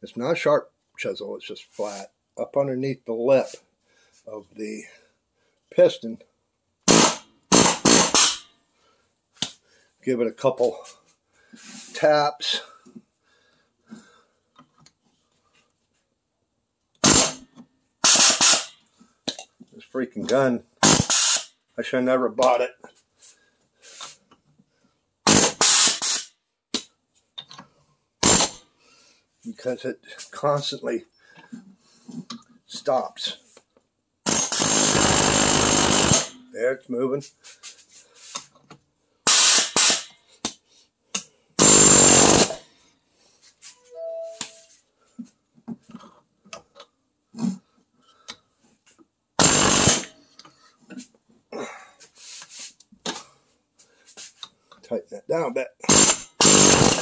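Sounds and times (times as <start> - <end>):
pneumatic air chisel hammering: 6.9 - 8.4, 17.0 - 17.4, 18.0 - 18.8, 20.8 - 21.5, 25.3 - 26.3, 28.2 - 28.6, 34.3 - 36.4, 39.3 - 40.1, 41.6 - 42.6, 49.4 - 50.1, 55.9 - 57.0.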